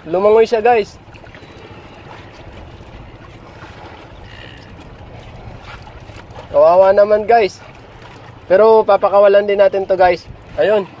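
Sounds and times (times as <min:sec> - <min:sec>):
motorboat engine running: 0:00.0 - 0:11.0
sea noise: 0:00.0 - 0:11.0
wind: 0:00.0 - 0:11.0.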